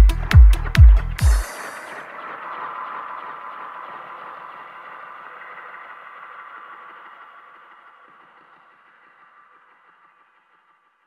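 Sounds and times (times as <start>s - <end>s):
noisy synth wash: 0.0s - 10.9s
faint steady tones: 0.0s - 11.0s.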